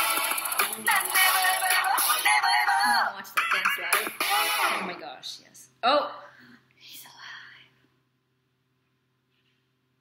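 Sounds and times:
person whispering: 6.8 - 7.8.

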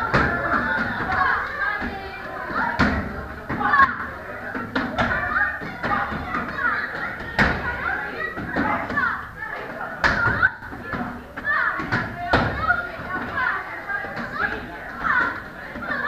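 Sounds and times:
children chattering and calling: 0.0 - 16.0.

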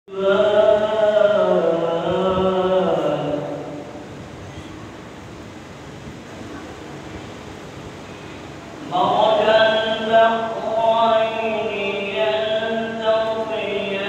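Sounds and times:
man chanting religious recitation: 0.1 - 4.0, 8.8 - 14.0
steady low hiss: 0.1 - 14.0.

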